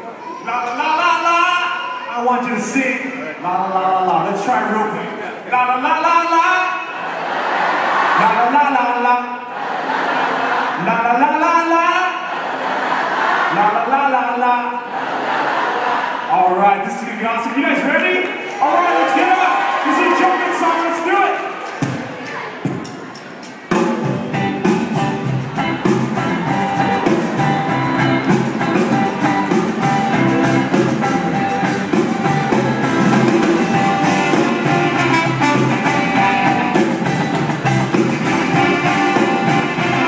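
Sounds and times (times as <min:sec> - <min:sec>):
rock band playing: 0:22.7 - 0:40.0.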